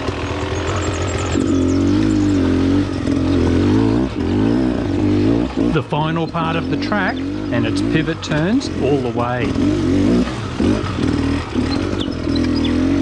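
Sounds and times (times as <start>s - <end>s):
dirt bike engine revving: 0.0s - 13.0s.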